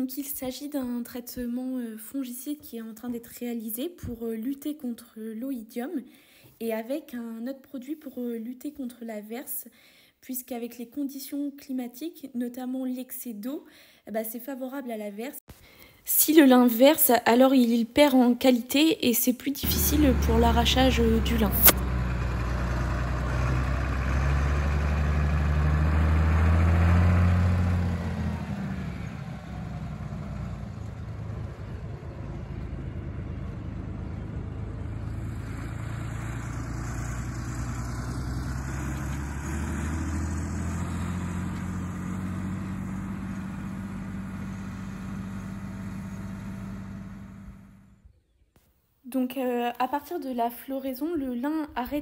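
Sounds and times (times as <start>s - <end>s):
tractor engine running: 19.6s - 48.0s.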